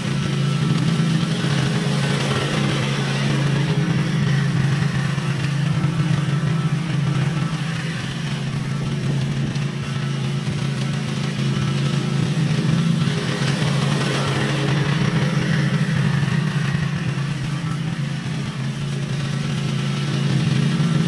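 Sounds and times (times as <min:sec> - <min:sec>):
lawn mower engine running: 0:00.0 - 0:21.0.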